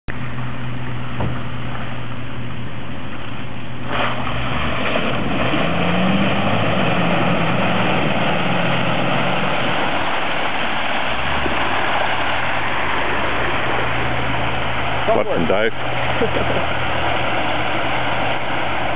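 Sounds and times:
off-road vehicle engine: 0:00.1 - 0:18.9
muddy water rushing: 0:00.2 - 0:18.9.

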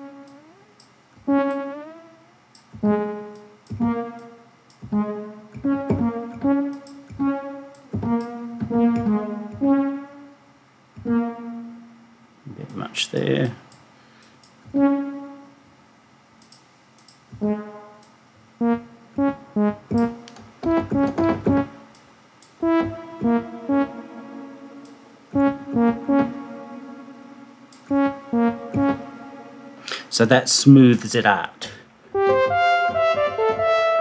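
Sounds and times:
synthesizer notes with echo: 0:00.0 - 0:12.4, 0:14.2 - 0:15.7, 0:17.3 - 0:30.5, 0:32.1 - 0:34.0.

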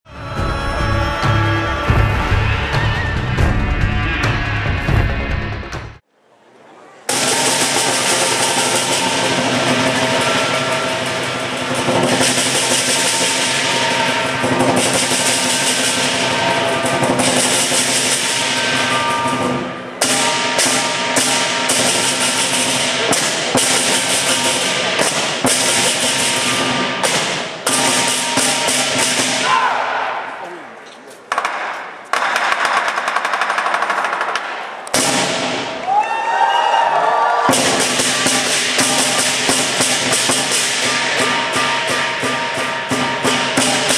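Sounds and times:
large drum: 0:07.1 - 0:29.6, 0:37.5 - 0:43.9
cymbals: 0:07.1 - 0:36.6, 0:37.4 - 0:43.9.

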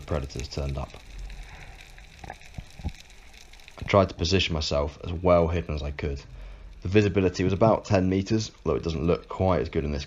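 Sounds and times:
underwater crackling hiss: 0:00.0 - 0:10.0.

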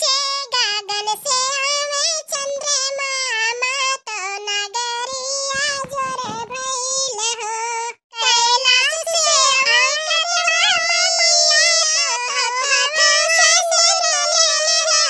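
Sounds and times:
high-pitched cartoon voice singing: 0:00.0 - 0:15.0.

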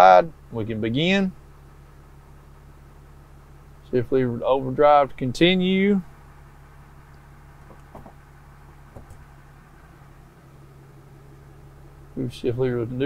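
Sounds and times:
diesel engine idling: 0:00.0 - 0:13.0.

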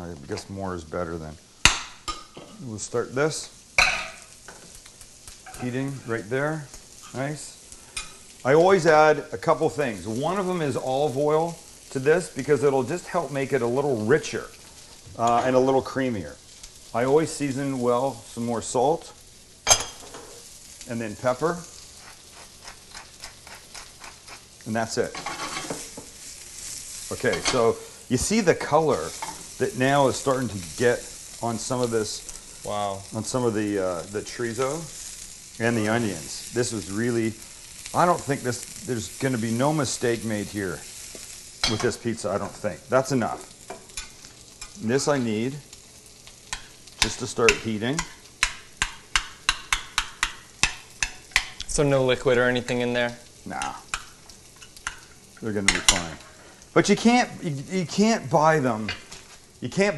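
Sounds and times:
faint frying sizzle: 0:00.0 - 0:59.9.

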